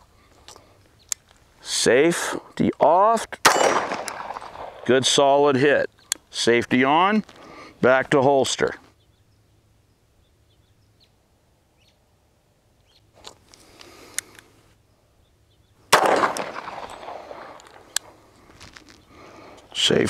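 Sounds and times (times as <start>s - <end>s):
pistol shot: 3.4s - 4.9s, 15.9s - 17.8s
faint rustling: 16.8s - 19.9s.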